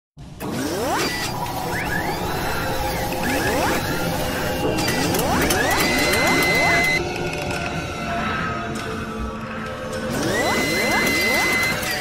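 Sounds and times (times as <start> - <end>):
mechanical whirring: 0.4 - 7.7, 10.1 - 12.0.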